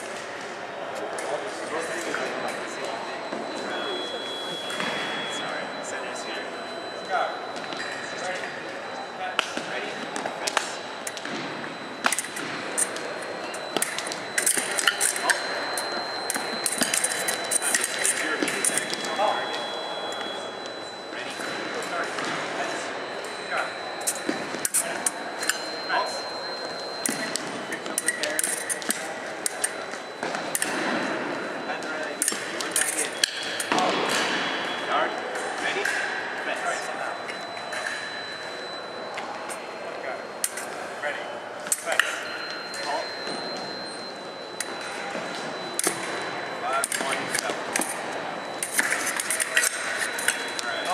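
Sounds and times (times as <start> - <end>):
crowd chatter in gym: 0.0 - 50.9
high electronic scoring tone: 1.7 - 35.4.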